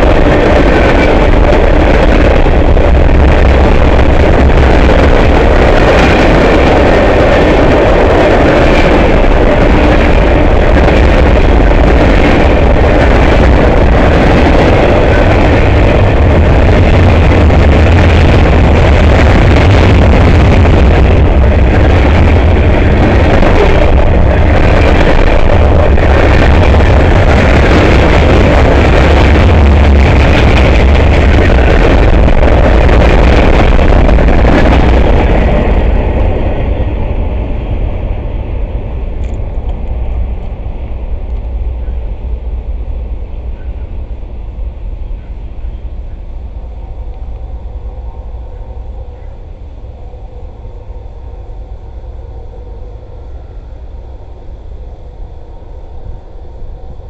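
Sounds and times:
train wheels rolling on rails: 0.0 - 57.0.

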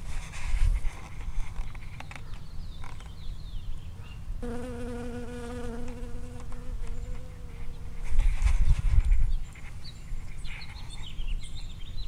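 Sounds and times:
bee buzzing in flight: 4.4 - 8.0.

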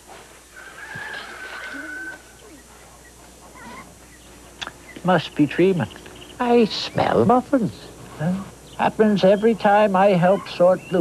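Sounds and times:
chickens clucking: 0.5 - 7.4, 8.2 - 11.0.

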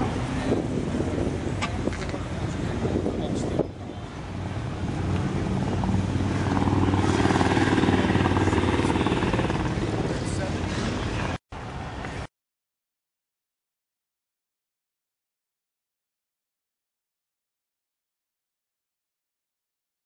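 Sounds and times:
murmur of outdoor crowd: 0.0 - 12.3
vehicle engine running: 4.2 - 11.4.

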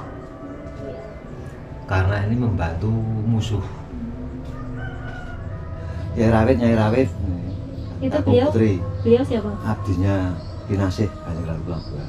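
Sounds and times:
voices: 0.0 - 12.0
rooster crowing: 3.9 - 8.0.

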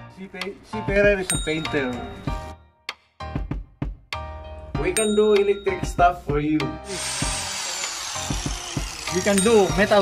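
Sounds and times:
angle grinder wire brushing steel: 6.9 - 10.0.

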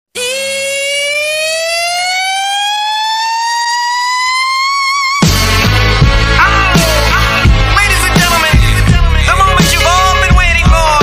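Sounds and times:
rising siren-like synth tone: 0.1 - 6.0.

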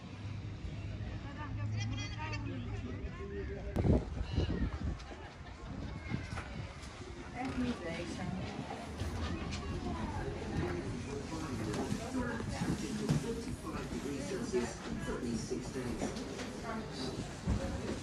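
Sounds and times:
indistinct chatter of voices: 0.0 - 18.0
low background noise: 0.0 - 18.0.

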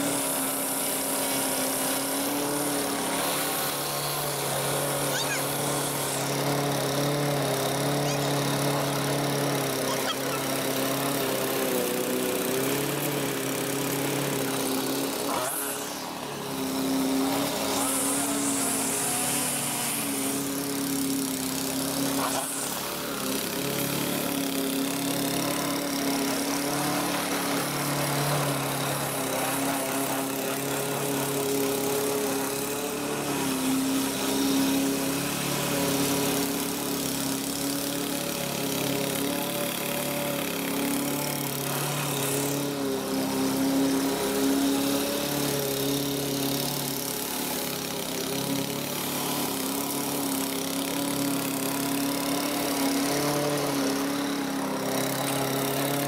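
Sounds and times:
lawn mower engine running: 0.0 - 56.0.

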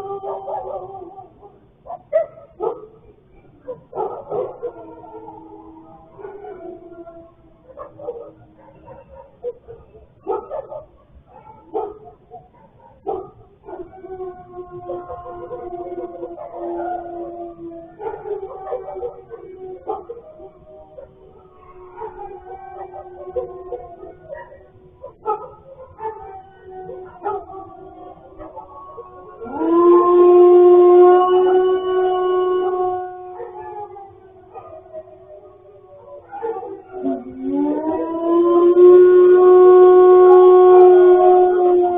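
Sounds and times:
dogs barking: 0.0 - 41.9
dogs howling: 0.0 - 41.9.

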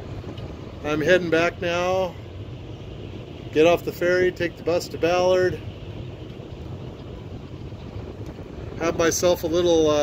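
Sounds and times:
car ferry engine rumble: 0.0 - 10.0
wind buffeting microphone: 0.0 - 10.0.

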